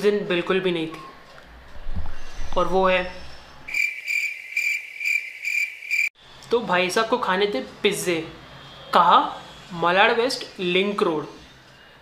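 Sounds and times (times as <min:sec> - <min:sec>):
cricket chirping: 0:03.7 - 0:06.1.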